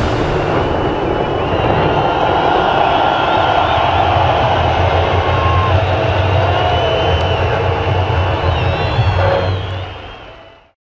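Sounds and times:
low rumble: 0:00.0 - 0:06.6
crowd noise: 0:00.0 - 0:10.7
whistling: 0:00.6 - 0:10.8.

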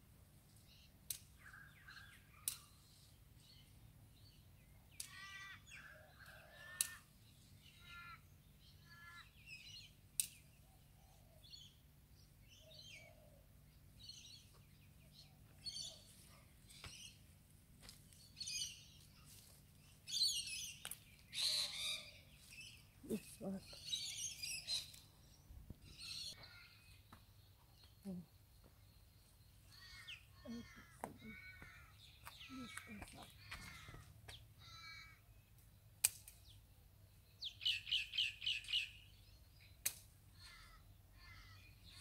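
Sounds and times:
small birds chirping: 0:00.4 - 0:42.0
rustling of leafy stems: 0:19.0 - 0:20.1.

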